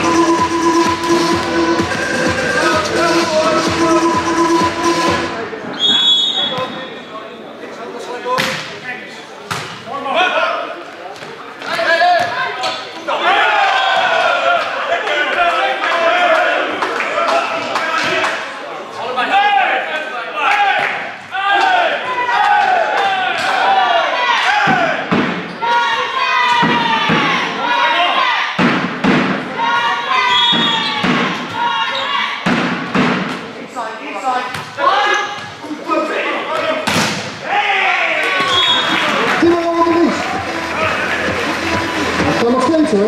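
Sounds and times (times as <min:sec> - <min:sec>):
shouting and cheering: 0:00.0 - 0:05.4, 0:11.8 - 0:28.6, 0:29.4 - 0:32.4, 0:37.4 - 0:43.0
volleyball thuds: 0:09.4 - 0:09.9, 0:28.6 - 0:29.5, 0:30.4 - 0:31.7, 0:32.4 - 0:33.5, 0:34.5 - 0:34.8.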